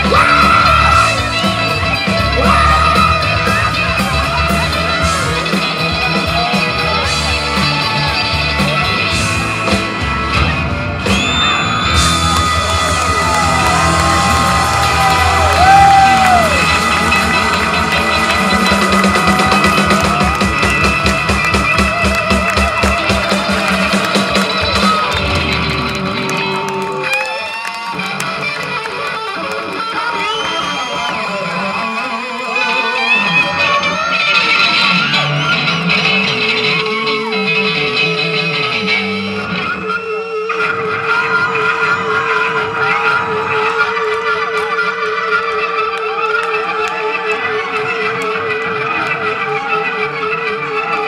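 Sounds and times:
drum kit beat: 0:00.0 - 0:26.4
electric guitars: 0:00.0 - 0:51.0
live rock band: 0:00.0 - 0:51.0.

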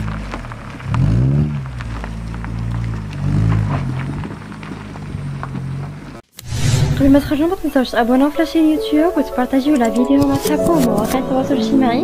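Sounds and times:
car engine revving: 0:00.0 - 0:06.2
tyres crunching on gravel: 0:00.0 - 0:06.2
background music: 0:07.0 - 0:12.0.

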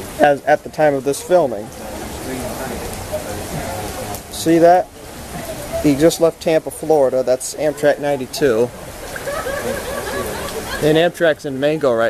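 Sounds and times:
faint indistinct voices: 0:00.0 - 0:12.0
steady rain falling: 0:00.0 - 0:12.0.

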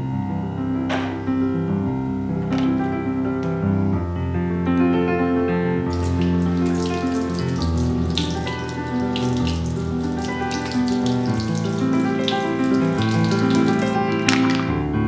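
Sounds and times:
piano background music: 0:00.0 - 0:15.0
faucet running into sink: 0:05.9 - 0:14.6
water splashing: 0:05.9 - 0:14.6
sponge scrubbing shell: 0:06.0 - 0:14.4.

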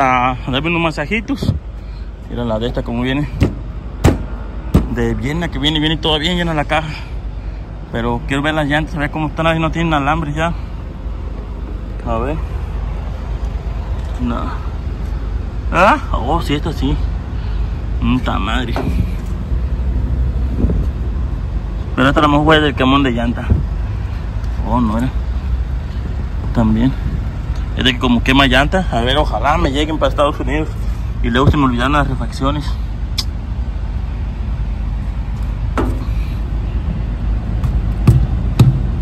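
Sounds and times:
vehicle engine idling: 0:00.0 - 0:39.0
short sharp knocks: 0:03.4 - 0:05.0, 0:35.8 - 0:36.2, 0:37.6 - 0:39.0.

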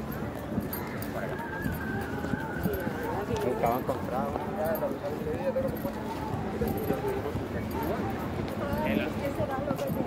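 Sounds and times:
footsteps on brick paving: 0:00.0 - 0:10.0
passers-by voices: 0:00.0 - 0:10.0.

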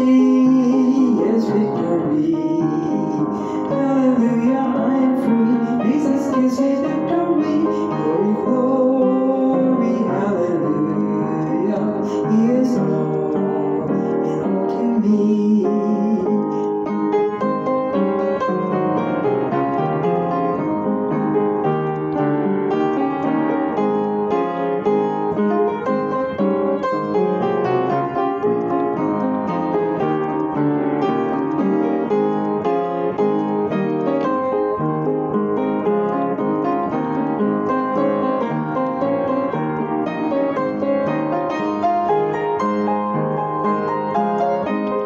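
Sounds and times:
woman singing: 0:00.0 - 0:16.6
piano keyboard playing hymn: 0:00.0 - 0:45.0.

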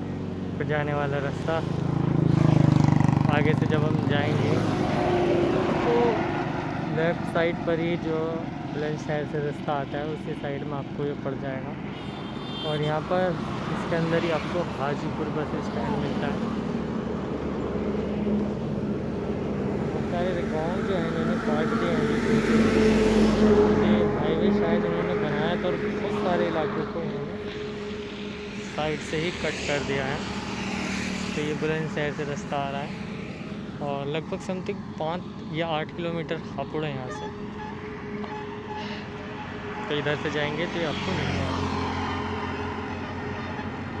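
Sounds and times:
vehicle engine humming: 0:00.0 - 0:44.0.

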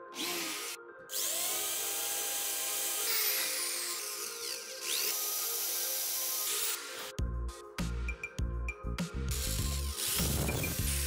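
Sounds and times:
cordless drill boring into plywood: 0:00.2 - 0:07.1.

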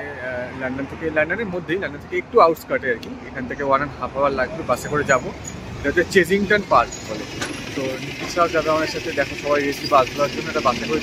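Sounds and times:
man talking: 0:00.0 - 0:11.0
street traffic: 0:00.0 - 0:11.0
bus engine pulling in: 0:04.4 - 0:11.0.

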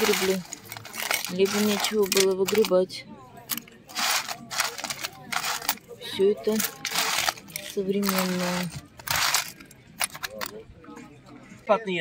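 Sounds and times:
jewellery jangling in metal tin: 0:00.0 - 0:02.8, 0:03.5 - 0:05.8, 0:06.4 - 0:10.5.

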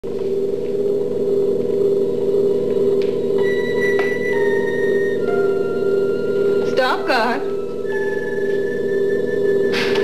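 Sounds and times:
fluttering electronic drone: 0:00.0 - 0:10.0.

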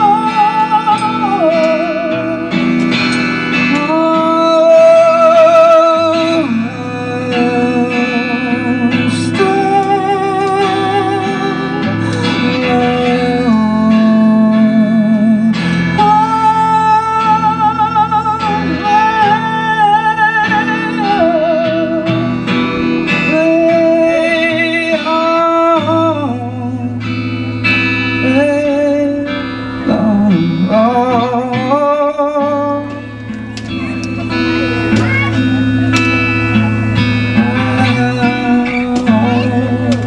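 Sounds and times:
man singing with vibrato: 0:00.0 - 0:33.3, 0:34.0 - 0:40.0
acoustic guitar: 0:00.0 - 0:40.0.

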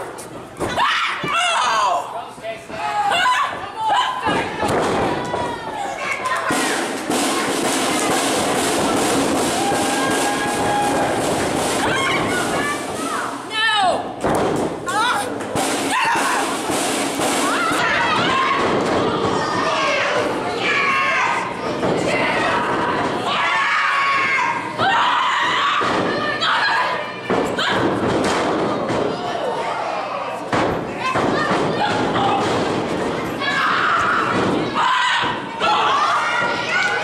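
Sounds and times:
people shouting: 0:00.7 - 0:02.2, 0:02.8 - 0:08.1, 0:08.8 - 0:14.0, 0:14.9 - 0:28.1, 0:31.0 - 0:32.7, 0:33.4 - 0:37.0.

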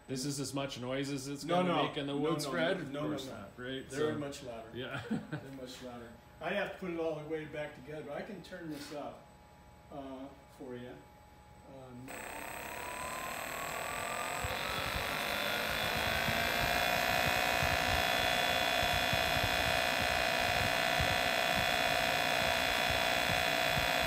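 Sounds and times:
vacuum pump motor whine: 0:11.4 - 0:24.0.

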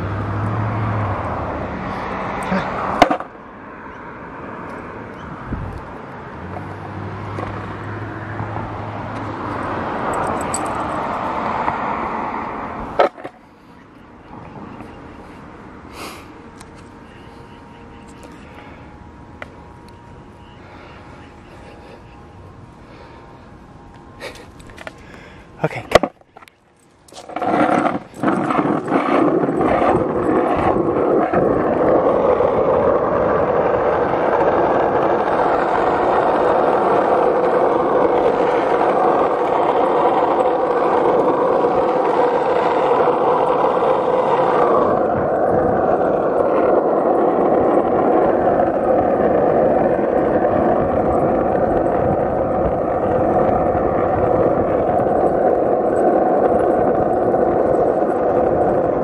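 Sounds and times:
wheels rolling on asphalt: 0:00.0 - 0:59.0
wind on microphone: 0:04.9 - 0:13.1, 0:27.1 - 0:59.0.

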